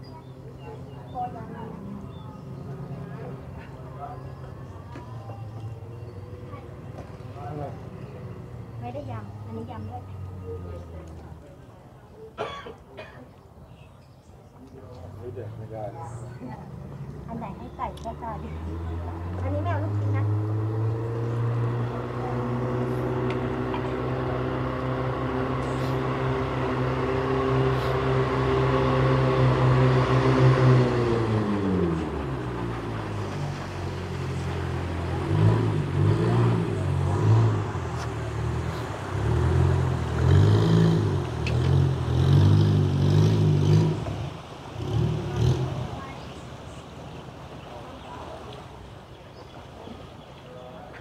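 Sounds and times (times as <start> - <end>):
boat engine running: 0.0 - 11.9, 14.6 - 51.0.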